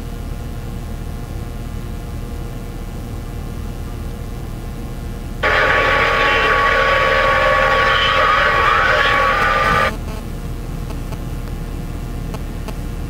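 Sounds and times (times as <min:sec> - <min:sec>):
steady low rumble: 0:05.4 - 0:09.9
tinny two-way radio transmission: 0:05.4 - 0:10.0.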